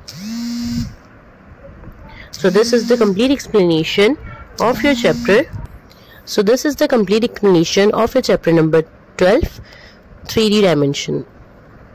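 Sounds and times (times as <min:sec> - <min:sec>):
low background noise: 0:00.0 - 0:11.9
person humming: 0:04.6 - 0:05.6.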